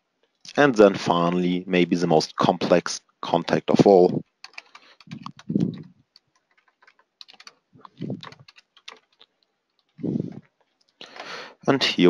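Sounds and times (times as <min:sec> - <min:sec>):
computer keyboard typing: 0:04.2 - 0:10.4.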